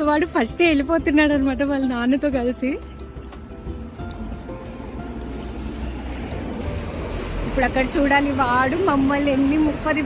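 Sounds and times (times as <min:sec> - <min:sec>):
woman speaking: 0:00.0 - 0:02.9, 0:07.5 - 0:10.0
soft background music: 0:00.0 - 0:10.0.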